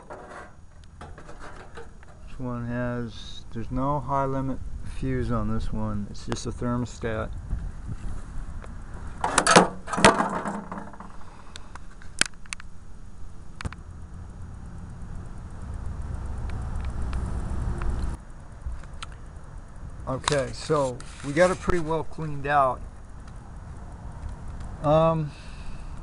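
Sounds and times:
metal parts knocking and rattling: 0.0 - 2.3, 9.2 - 11.2
low rumble: 12.8 - 18.3
scattered clicks: 24.2 - 24.8.

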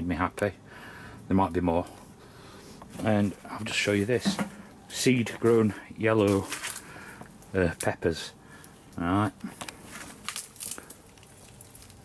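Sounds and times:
plant leaves rustling: 2.6 - 12.0.

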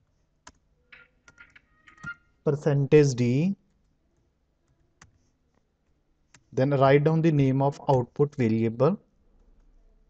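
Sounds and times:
man speaking: 2.5 - 3.6, 6.6 - 9.1.

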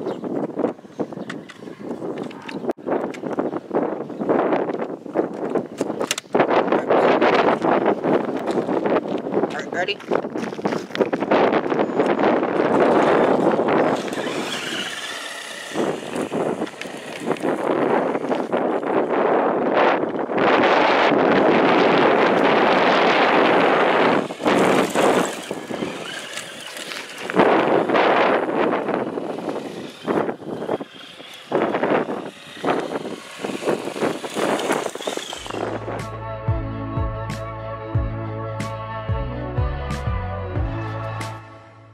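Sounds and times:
wind on microphone: 0.0 - 37.4
tyres rushing on gravel: 12.6 - 19.0, 21.8 - 35.6
electric motor whine: 12.6 - 19.2, 20.3 - 36.0.

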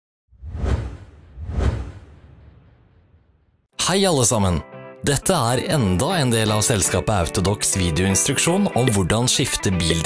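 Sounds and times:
whoosh sound effects: 0.3 - 3.6
deep boom: 0.5 - 3.6.

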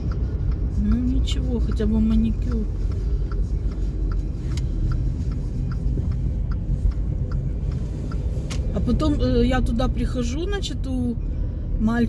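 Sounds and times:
faint light ticks: 0.0 - 9.9
car cabin rumble: 0.0 - 12.0.

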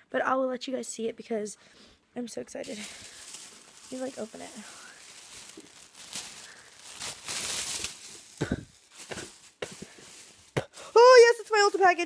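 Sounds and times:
packaging rustling and tearing: 2.6 - 12.0.

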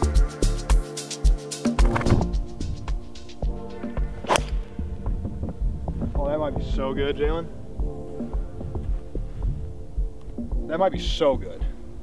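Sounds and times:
music with thumping beat: 0.0 - 11.8
golf club striking ball: 4.2 - 4.8.

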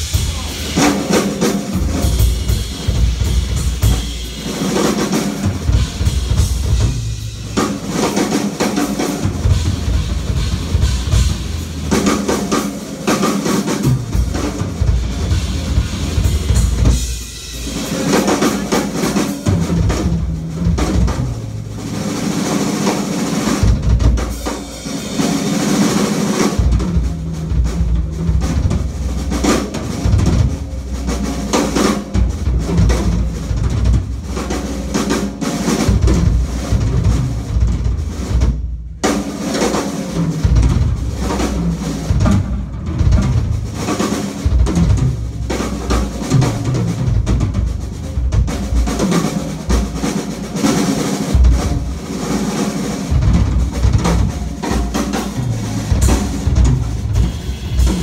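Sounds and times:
drum kit solo: 0.0 - 58.0.

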